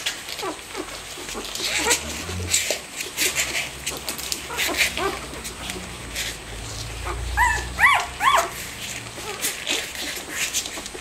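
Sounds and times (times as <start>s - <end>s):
puppies squeaking and whimpering: 0.0s - 11.0s
puppy squeals: 0.2s - 11.0s.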